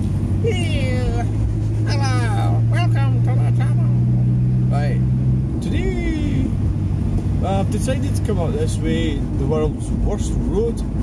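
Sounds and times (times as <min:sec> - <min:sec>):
car engine droning: 0:00.0 - 0:11.0
road rumble: 0:00.0 - 0:11.0.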